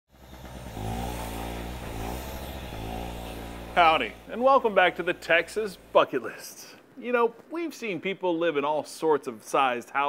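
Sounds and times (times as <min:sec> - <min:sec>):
electric paint spray gun buzzing: 0:00.1 - 0:06.1.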